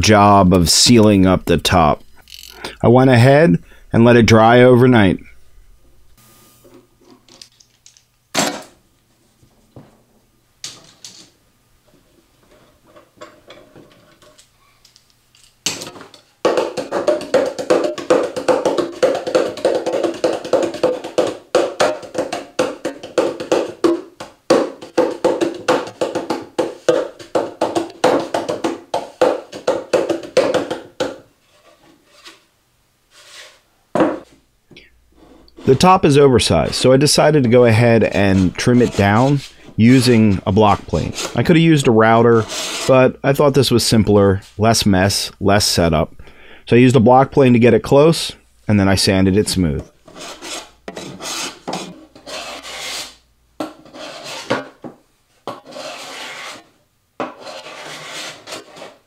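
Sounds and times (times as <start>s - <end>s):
hands drumming on box drum: 16.4s - 31.2s.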